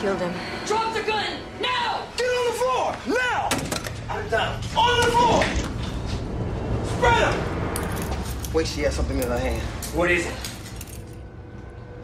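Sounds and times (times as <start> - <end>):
low droning score: 0.0 - 12.0.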